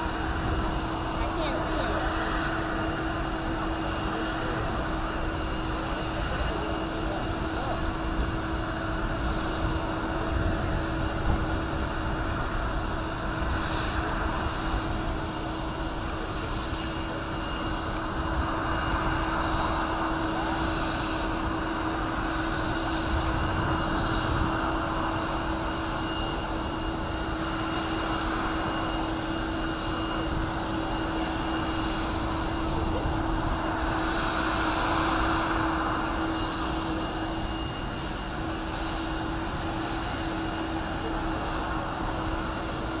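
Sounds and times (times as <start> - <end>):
jet engines idling: 0.0 - 43.0.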